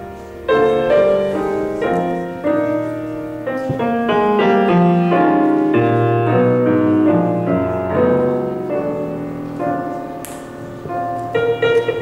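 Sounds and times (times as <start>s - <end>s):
jazz grand piano: 0.0s - 12.0s.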